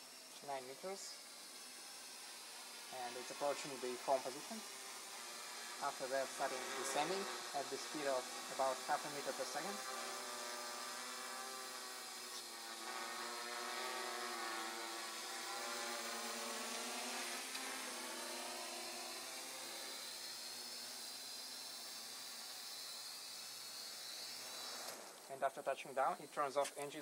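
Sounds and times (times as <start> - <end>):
drone propellers buzzing: 0.0 - 27.0.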